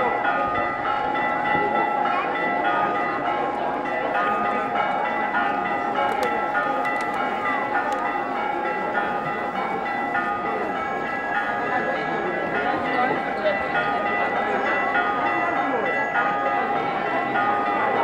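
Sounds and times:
church bells ringing: 0.0s - 18.0s
murmur of large crowd: 0.0s - 18.0s.

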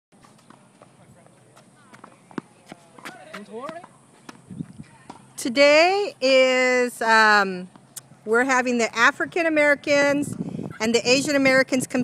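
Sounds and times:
faint footsteps on hard court: 0.2s - 6.2s, 7.0s - 10.1s.

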